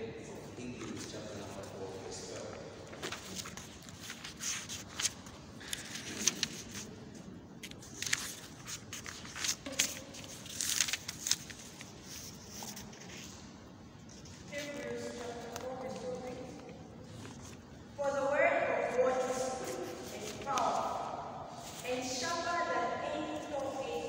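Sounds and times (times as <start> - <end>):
paper rustling: 0.6 - 17.8, 18.9 - 22.4.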